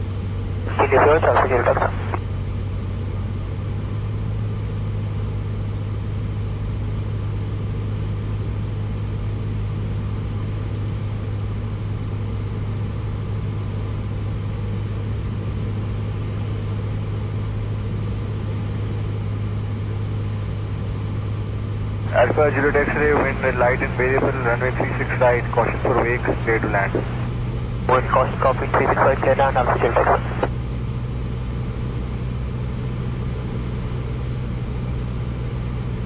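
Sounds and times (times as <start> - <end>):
airplane engine droning: 0.0 - 36.0.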